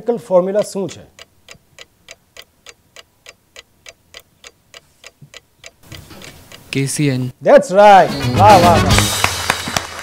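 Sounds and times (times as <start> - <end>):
countdown timer ticking: 7.9 - 9.2.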